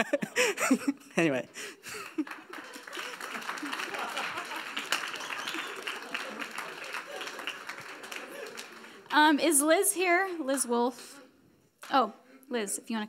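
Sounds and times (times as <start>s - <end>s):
audience clapping: 1.8s - 9.4s.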